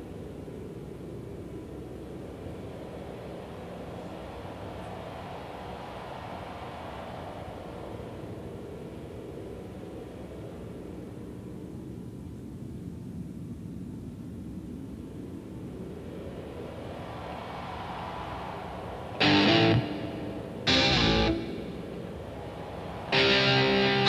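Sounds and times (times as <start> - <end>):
swept jet-like whooshing noise: 0.0 - 12.7, 14.5 - 24.0.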